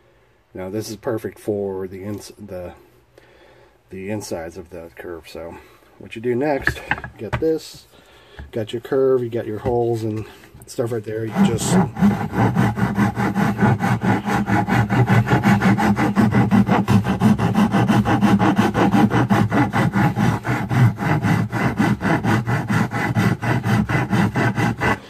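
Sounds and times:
hand file rasping on wood: 0:10.8 - 0:25.0.

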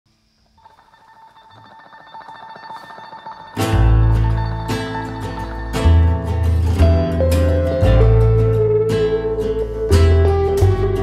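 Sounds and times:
telephone ringing tone: 0:00.6 - 0:06.5.

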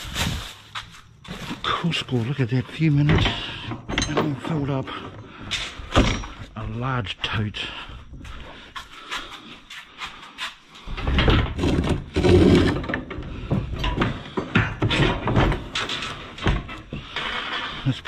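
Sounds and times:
plastic bags rustling: 0:00.0 - 0:02.9
thumps and scraping: 0:00.0 - 0:06.8, 0:07.9 - 0:18.0.

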